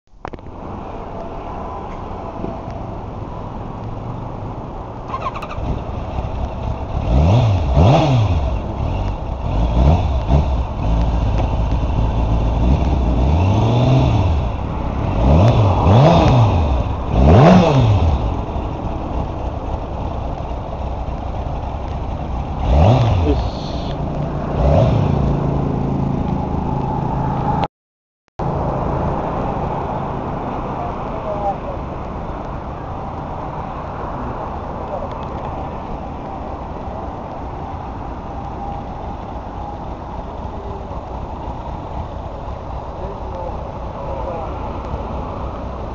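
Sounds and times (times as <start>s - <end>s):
motorcycle engine revving and idling: 5.1s - 27.6s.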